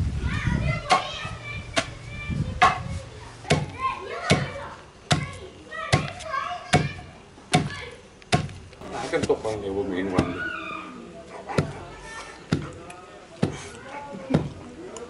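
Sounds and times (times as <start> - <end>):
wooden pestle pounding in mortar: 12.5 - 12.8, 14.3 - 14.6.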